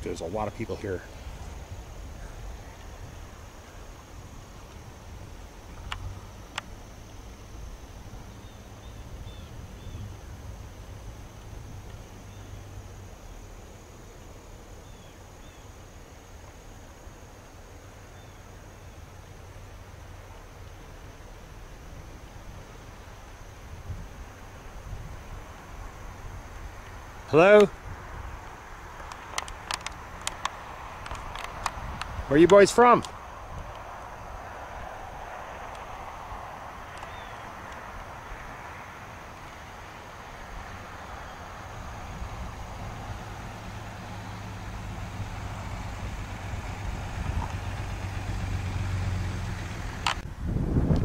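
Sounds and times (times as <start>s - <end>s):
low wind rumble on microphone: 0.0s - 13.6s, 21.4s - 51.0s
faint high-pitched insect drone: 0.0s - 51.0s
faint chirps: 5.5s - 10.5s, 14.7s - 15.9s, 18.0s - 19.2s, 36.9s - 37.6s
sharp clicks: 29.0s - 33.9s, 50.0s - 50.3s.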